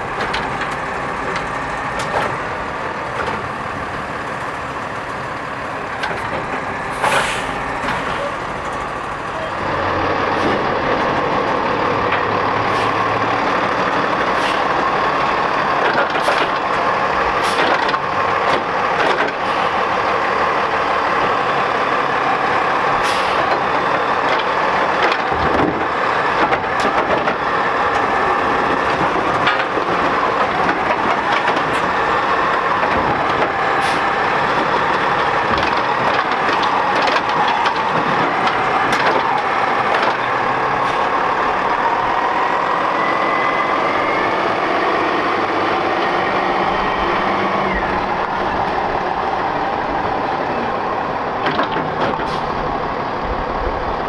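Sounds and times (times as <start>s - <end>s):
truck engine running: 0.0s - 54.0s
short hisses or clunks: 7.0s - 7.5s.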